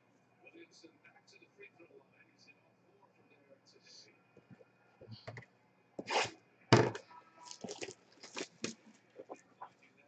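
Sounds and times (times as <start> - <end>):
cardboard and wrapping crinkling: 7.4 - 9.3.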